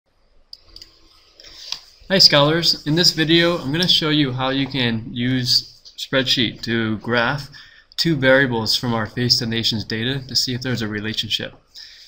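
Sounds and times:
soft hiss: 0.2 - 12.0
person speaking: 0.6 - 12.0.

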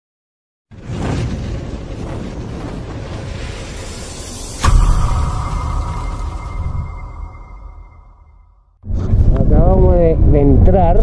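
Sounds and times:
sharp impact with deep boom: 0.8 - 9.5
rushing swell with deep rumble: 0.8 - 10.4
steady ringing tone: 4.5 - 8.8.

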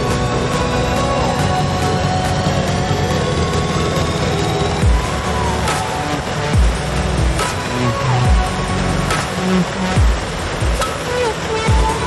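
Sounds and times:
low falling sweep: 0.0 - 10.3
background music: 0.0 - 12.0
propane burner roaring: 0.0 - 12.0.

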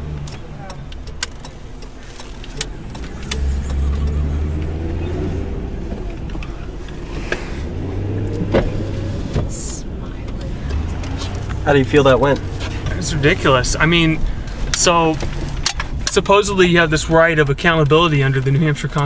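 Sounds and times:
car engine pulling away: 0.0 - 19.0
clicks: 0.1 - 5.1.

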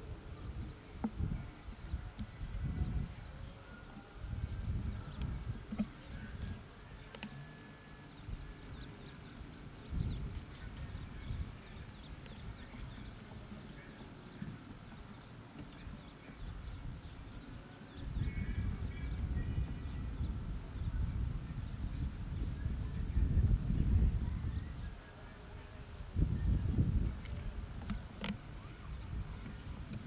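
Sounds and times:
faint birds chirping: 0.0 - 30.0.

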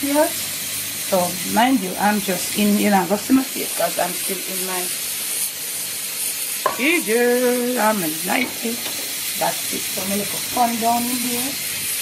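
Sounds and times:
hot liquid sizzling: 0.0 - 12.0
person talking: 6.7 - 8.8, 9.4 - 11.6.

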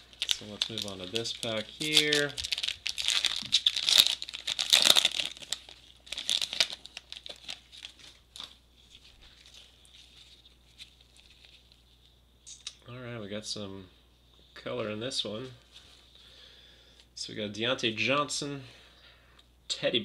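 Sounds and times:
cards ticking and rustling: 0.0 - 8.6
foil wrapper tearing and crinkling: 0.0 - 11.8.

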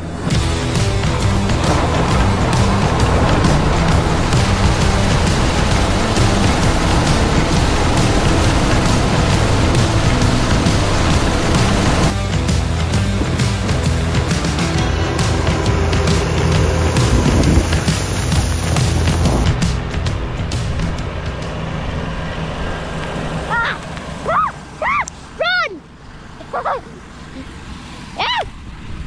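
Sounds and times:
fertiliser spreader spinning: 0.0 - 26.4
tractor running: 0.0 - 29.0.

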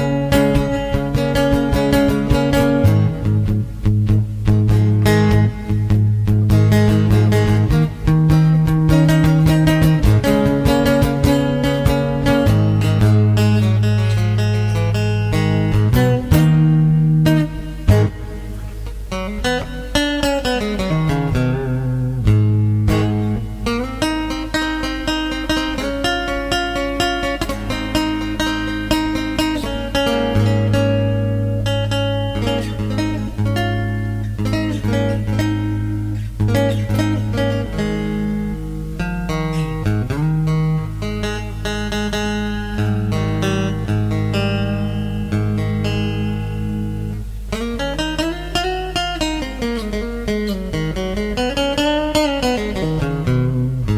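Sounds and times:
electric guitar with light overdrive: 0.0 - 53.9.

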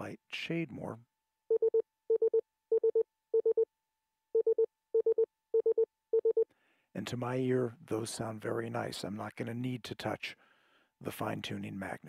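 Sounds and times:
morse code beeps: 1.5 - 3.7, 4.4 - 6.4.

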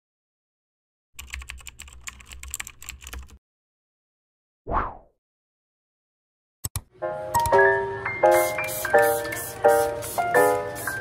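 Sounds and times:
computer keyboard typing: 1.2 - 3.4.

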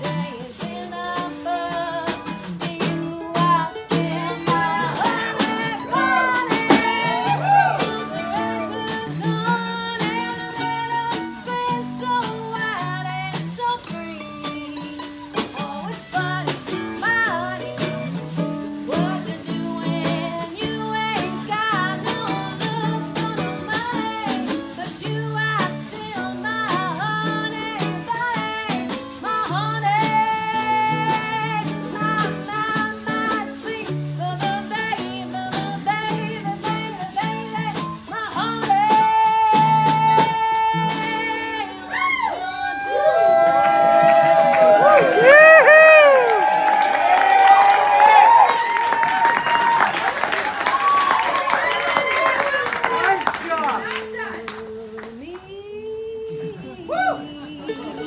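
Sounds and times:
woman singing: 0.0 - 46.2, 51.0 - 58.0
plucked string instrument: 0.0 - 55.3, 56.1 - 58.0
acoustic guitar: 0.0 - 58.0.

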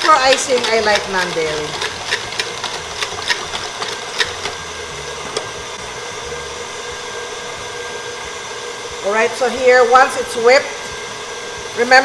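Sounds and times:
stand mixer motor whipping cream: 0.0 - 12.0.

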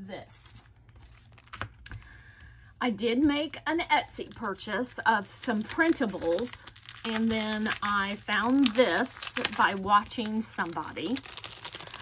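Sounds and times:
woman speaking: 0.0 - 0.7, 2.8 - 11.3.

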